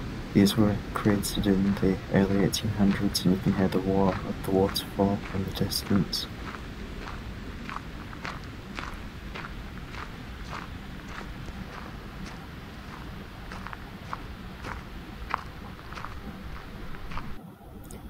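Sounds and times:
low rushing noise: 0.0 - 18.0
footsteps on gravel: 0.6 - 17.4.

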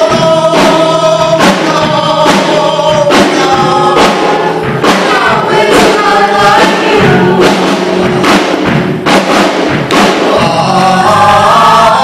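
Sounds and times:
man and women singing together: 0.0 - 8.2, 10.0 - 12.0
sharp thump accents: 3.1 - 10.6.

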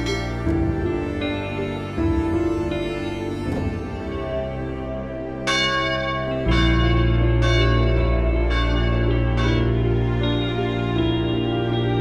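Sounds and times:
bell strikes: 0.0 - 1.4, 5.5 - 12.0
low drone: 0.0 - 12.0.

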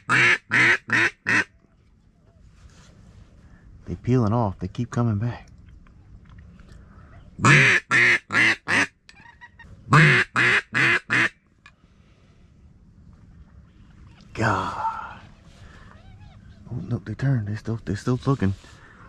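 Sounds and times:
duck call quacks: 0.0 - 1.5, 7.4 - 11.4.

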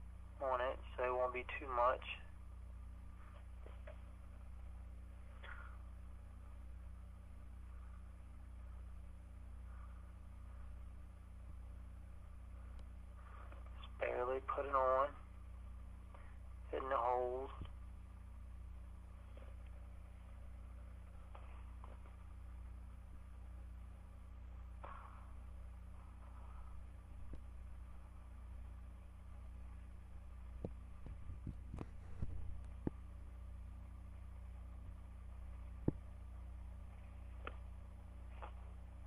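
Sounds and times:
low electrical hum: 0.0 - 39.0.

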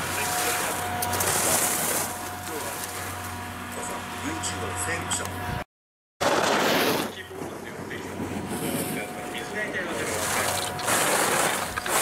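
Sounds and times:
skis scraping on snow: 6.2 - 7.5, 9.9 - 12.0.

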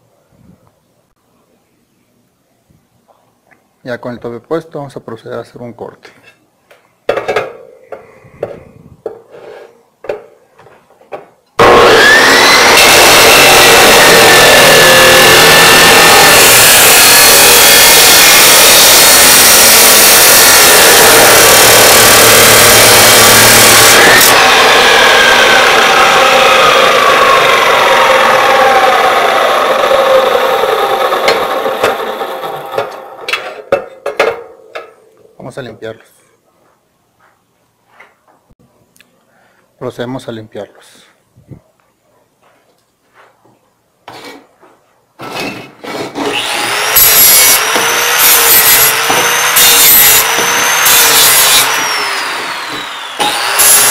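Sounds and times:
chop saw grinding steel tube: 11.6 - 33.5, 45.4 - 53.9.

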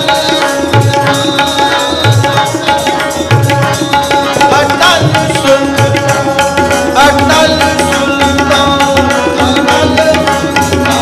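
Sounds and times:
harmoniums sustaining notes: 0.0 - 11.0
tabla strokes: 0.0 - 11.0
man singing a hymn: 4.3 - 11.0.

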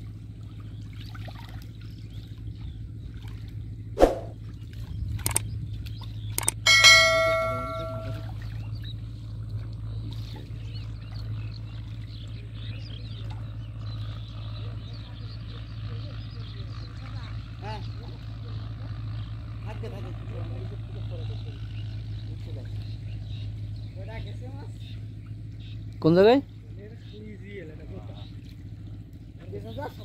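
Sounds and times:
steady low hum: 0.0 - 27.0
bright metallic ding: 6.6 - 8.3.

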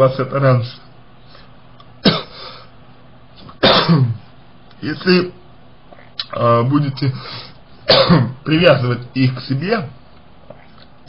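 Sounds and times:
man clearing his throat: 2.0 - 2.4, 3.6 - 4.3, 7.9 - 8.4.

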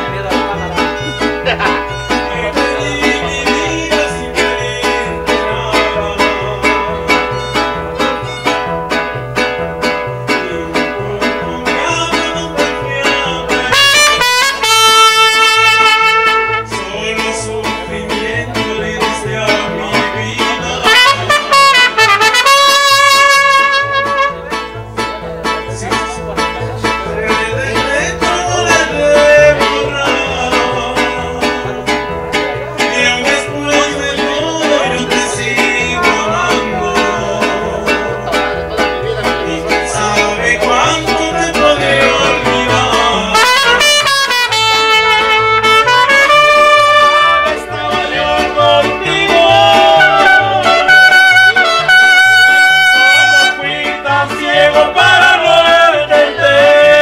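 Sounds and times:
strummed guitars: 0.0 - 57.0
violins: 7.1 - 8.8
trumpets playing held phrases: 13.6 - 16.8, 20.8 - 24.7, 43.1 - 48.2, 49.6 - 53.8.

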